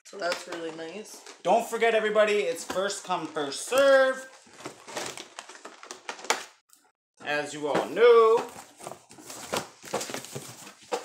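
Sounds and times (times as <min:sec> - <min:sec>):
items clicking and knocking: 0:00.1 - 0:01.6, 0:02.4 - 0:06.6.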